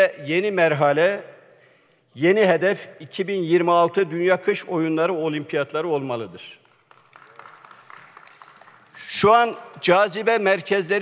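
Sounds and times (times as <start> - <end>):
low murmur in hall: 0.0 - 11.0.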